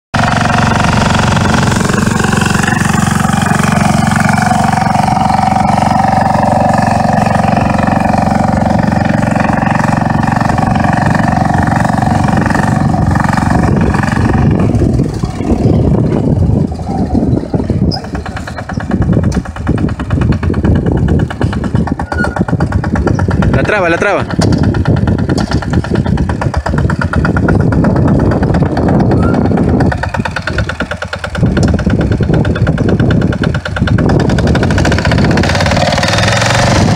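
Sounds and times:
tractor engine under load: 0:00.1 - 0:36.9.

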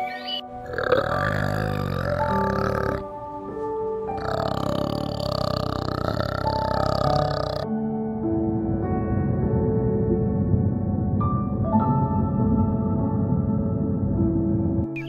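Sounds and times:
orangutan grunting calls: 0:00.0 - 0:03.1, 0:04.1 - 0:07.6
soft background music: 0:00.0 - 0:15.0.

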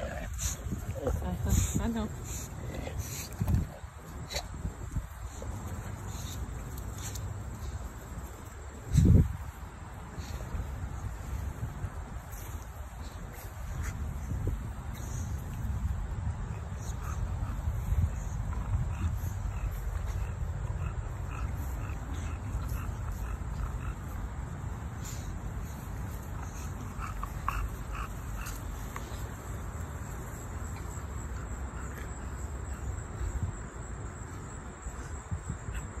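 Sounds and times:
wind rumbling on microphone: 0:00.0 - 0:29.6.

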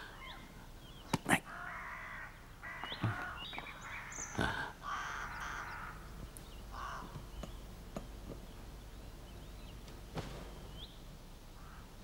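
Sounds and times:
crow cawing: 0:01.5 - 0:06.1, 0:06.7 - 0:07.2, 0:11.6 - 0:11.9.

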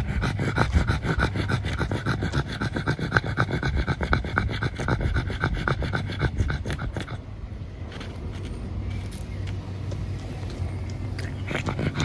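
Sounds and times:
dog panting: 0:00.0 - 0:07.3, 0:11.2 - 0:12.0.

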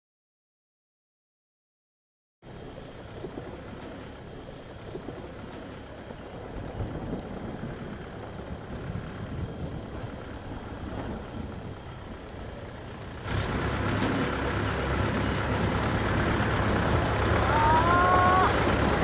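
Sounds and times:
motor vehicle engine running: 0:02.4 - 0:19.0.

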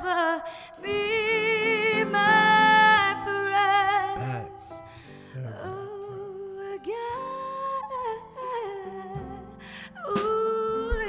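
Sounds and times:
drums: 0:10.1 - 0:11.0.

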